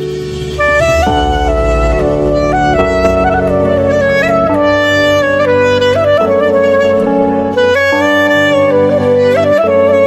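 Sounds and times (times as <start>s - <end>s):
sustained low accompaniment: 0.0s - 8.1s
slow clarinet melody: 0.6s - 10.0s.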